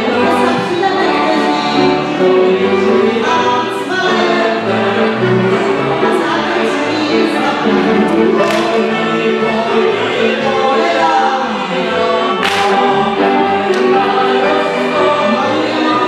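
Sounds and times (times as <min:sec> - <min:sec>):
many voices singing folk tune: 0:00.0 - 0:16.0.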